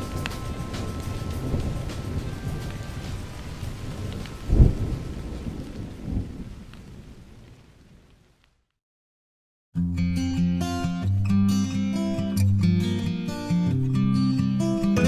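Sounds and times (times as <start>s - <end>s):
rolling thunder: 0.0s - 8.1s
rain: 0.0s - 8.8s.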